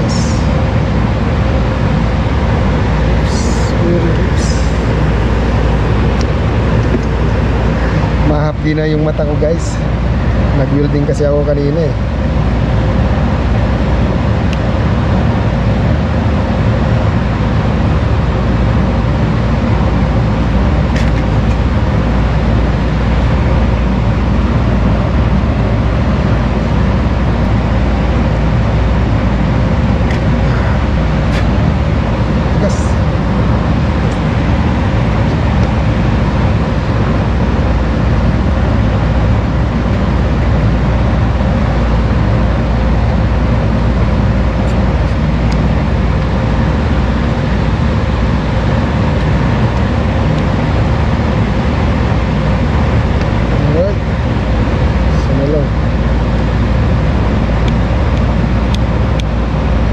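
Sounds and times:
machine drone: 0.0 - 59.9.

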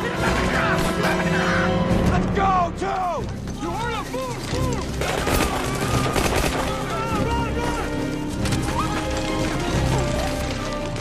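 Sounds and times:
rifle and machine gun fire: 5.0 - 7.0
men yelling: 6.7 - 8.1.

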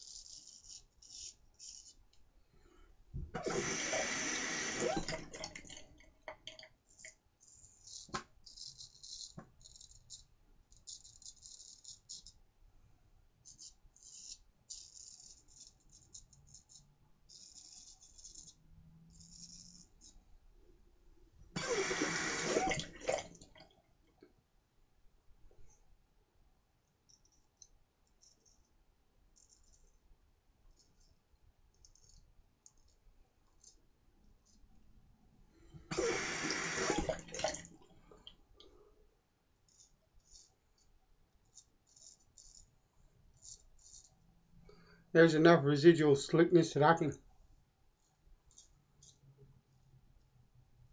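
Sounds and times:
razor scraping whiskers: 0.0 - 2.0, 7.4 - 12.4, 13.4 - 20.2, 41.5 - 44.2.

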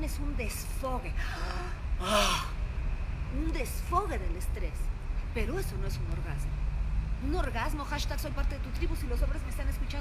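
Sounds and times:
woman sighing: 1.2 - 2.6.

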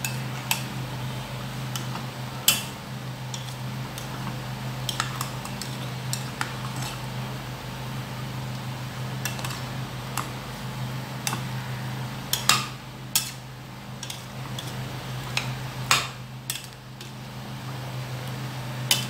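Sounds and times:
metal spatula scraping pot: 4.9 - 7.0.

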